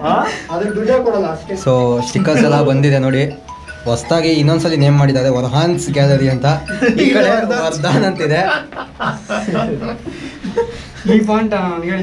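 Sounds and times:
people talking: 0.0s - 10.1s, 11.0s - 12.0s
bell-like tone: 0.2s - 8.6s.

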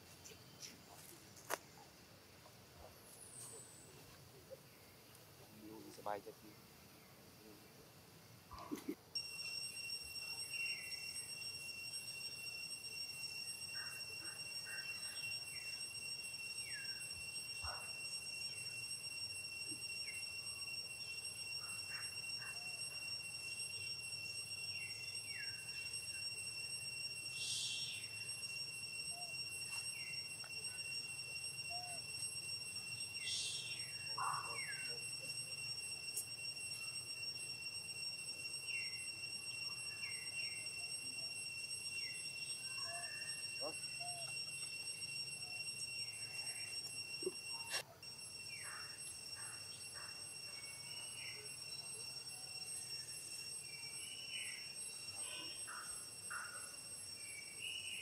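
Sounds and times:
insects droning: 0.0s - 58.0s.

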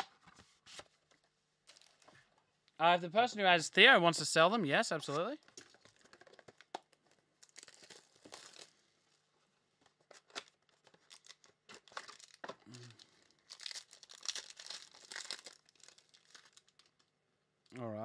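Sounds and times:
card packaging tearing and crinkling: 1.7s - 2.0s, 5.5s - 8.8s, 9.9s - 17.0s.

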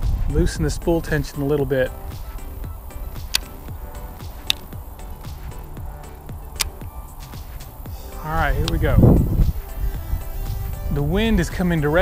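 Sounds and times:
background music: 0.0s - 12.0s
wind rumble on microphone: 0.0s - 12.0s
fishing reel clicks: 3.1s - 3.6s, 4.3s - 5.2s.

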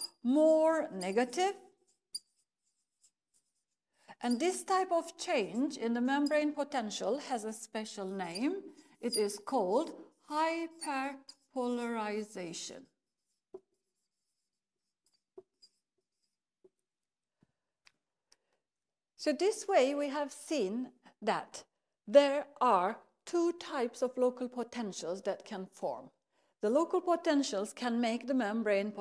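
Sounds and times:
marker writing on whiteboard: 0.0s - 12.3s, 13.0s - 16.8s.

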